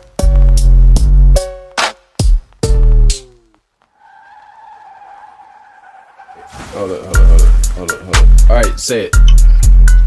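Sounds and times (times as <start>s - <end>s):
tire squeal screech: 3.9s - 7.0s.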